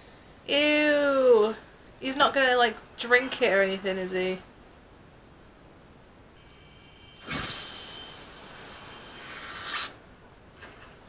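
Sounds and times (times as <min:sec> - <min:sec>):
steady hiss: 0:06.4 - 0:10.0.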